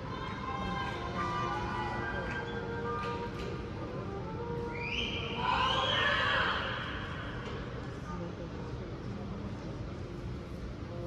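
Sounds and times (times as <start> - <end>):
low hum of crowd: 0.0 - 11.0.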